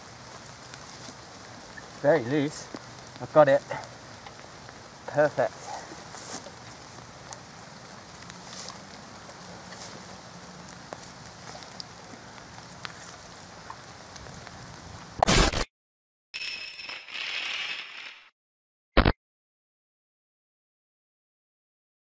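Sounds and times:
hands rustling soil and leaves: 0.0 - 15.2
rain-like hiss: 0.0 - 15.2.

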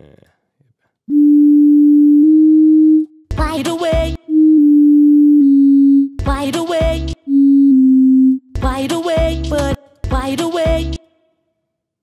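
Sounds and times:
steady electronic tone: 1.1 - 3.1, 4.2 - 6.2, 7.3 - 8.4.

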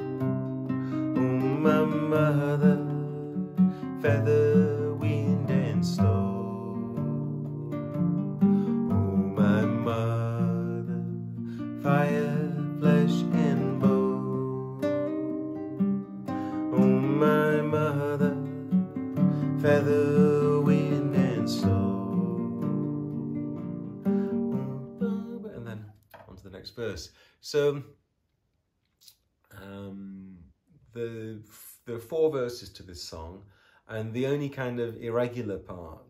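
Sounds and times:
acoustic guitar strummed: 0.0 - 25.6
man singing softly: 0.9 - 7.8, 8.7 - 15.1, 16.5 - 23.0, 24.3 - 25.8, 29.5 - 30.4.

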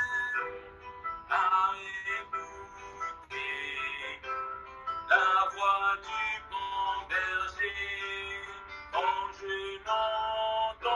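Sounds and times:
man singing slow worship song: 1.3 - 2.4, 3.2 - 4.4, 5.1 - 10.9.

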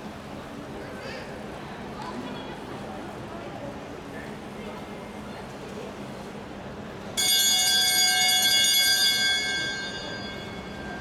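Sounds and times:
lap bell ringing: 7.2 - 11.0.

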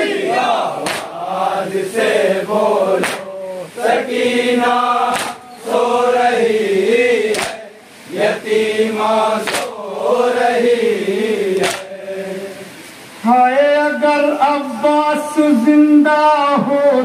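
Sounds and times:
men chanting in unison: 0.0 - 17.0
chest-beating slaps: 0.8 - 1.2, 3.0 - 3.3, 5.1 - 5.4, 7.3 - 7.6, 9.4 - 9.7, 11.6 - 11.9.

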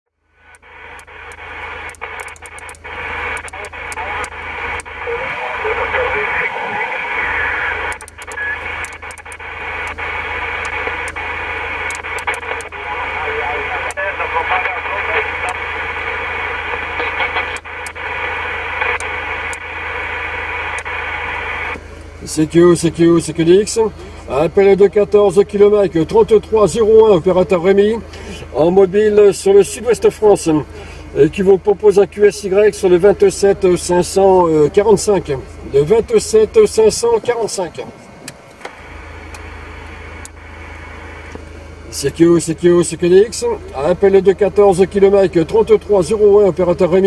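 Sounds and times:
low steady hum: 0.1 - 47.0
radio static hiss: 0.1 - 47.0
sharp static crackles: 0.1 - 47.0
faint garbled radio voices: 0.5 - 38.2.

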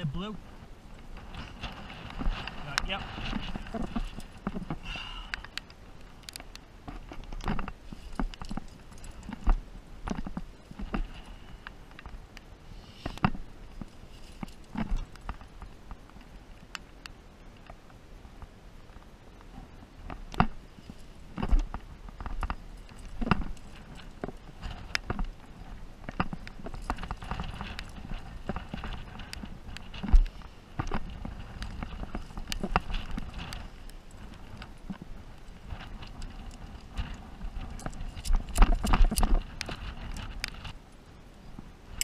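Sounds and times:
wind rumble on microphone: 0.0 - 42.0
hands and shoes scraping rock: 1.1 - 4.9
climbing gear clinking: 1.2 - 12.1, 13.0 - 15.7, 20.4 - 40.7.

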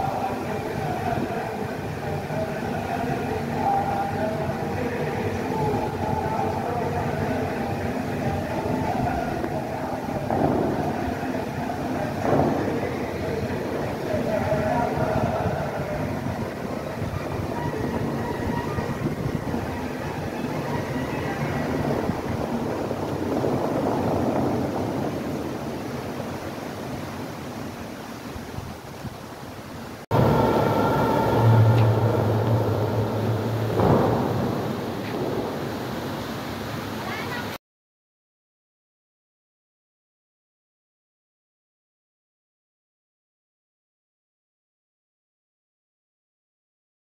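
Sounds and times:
faint music: 0.0 - 25.9, 30.1 - 37.5
fountain jets spraying: 0.0 - 37.6
steady low hum: 30.1 - 37.0.

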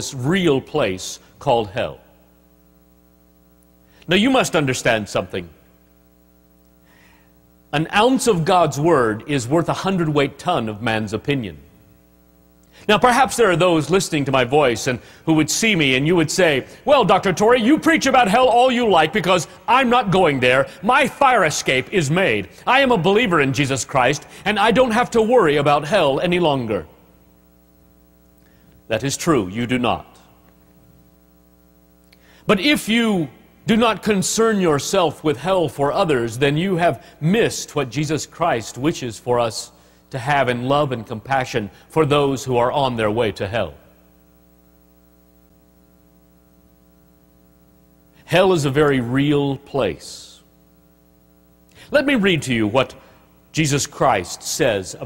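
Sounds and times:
person speaking: 0.0 - 2.3, 4.0 - 5.7, 7.7 - 11.8, 12.6 - 27.2, 28.4 - 30.7, 48.2 - 50.5, 51.7 - 55.0
faint electrical mains hum: 0.0 - 55.0.

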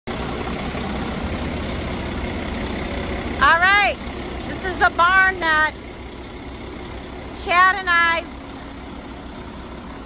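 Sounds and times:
diesel engine running: 0.1 - 10.0.

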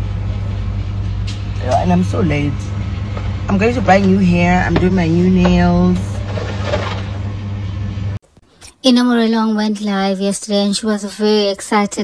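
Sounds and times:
car cabin hum: 3.1 - 7.7.

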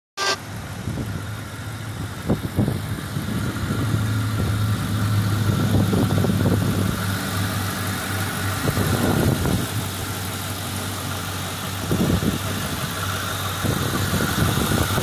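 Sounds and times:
car engine idling: 0.4 - 15.0.

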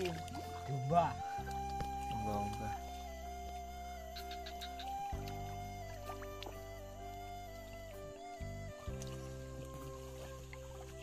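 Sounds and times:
music of held chords: 0.0 - 11.0.

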